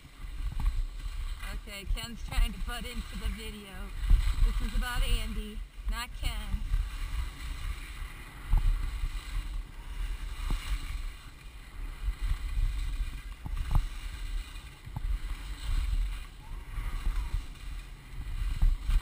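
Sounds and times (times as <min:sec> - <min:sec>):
skis scraping over snow: 0:00.0 - 0:19.0
wind rumbling on microphone: 0:00.0 - 0:19.0.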